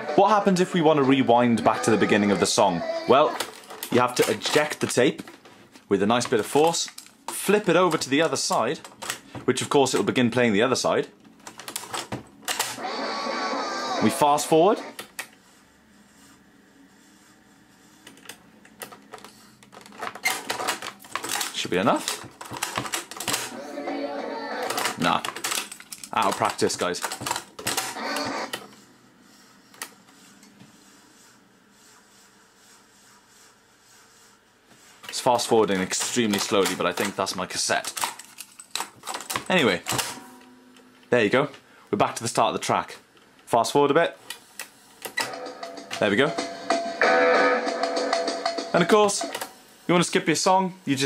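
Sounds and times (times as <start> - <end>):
cassette deck whirring: 0.0 - 15.4, 18.0 - 28.9, 35.1 - 41.6, 44.3 - 49.6
music from tape playback: 45.2 - 49.6.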